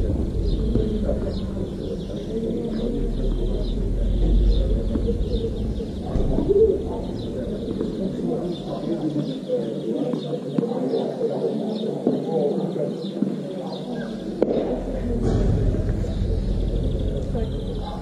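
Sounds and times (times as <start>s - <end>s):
birds chirping and cooing: 0.0s - 18.0s
faint distant voices: 0.0s - 18.0s.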